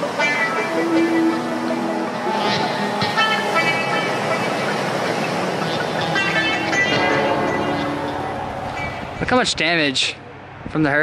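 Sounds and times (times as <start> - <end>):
background music sustained notes: 0.0 - 9.6.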